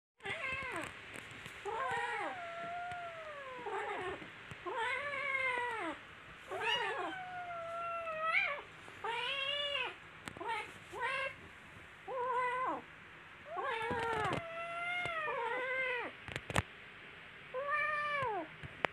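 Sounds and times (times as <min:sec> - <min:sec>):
kittens yowling: 0:01.7 - 0:11.4, 0:13.5 - 0:16.1.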